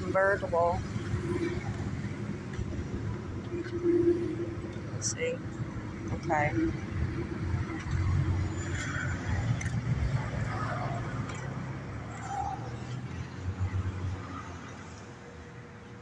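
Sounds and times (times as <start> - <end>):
car engine rumbling: 0.0 - 16.0.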